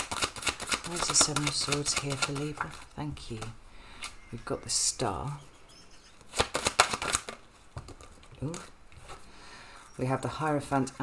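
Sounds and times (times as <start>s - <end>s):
cards being shuffled: 0.0s - 4.2s, 6.2s - 9.3s.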